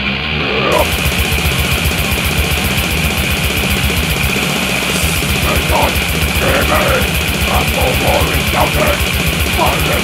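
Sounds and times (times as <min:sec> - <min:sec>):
distorted guitars and bass: 0:00.0 - 0:10.0
fast drumming: 0:00.7 - 0:10.0.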